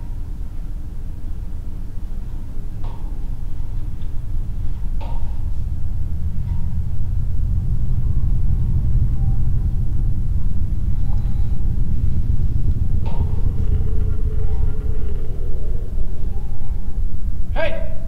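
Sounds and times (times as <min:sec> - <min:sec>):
low rumbling drone: 0:00.0 - 0:18.0
faint wavering tone: 0:02.9 - 0:18.0.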